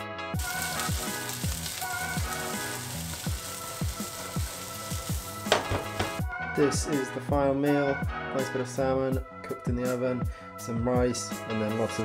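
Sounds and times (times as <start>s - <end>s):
background music with steady beat: 0.0s - 12.0s
vegetables sizzling in frying pan: 0.4s - 6.2s.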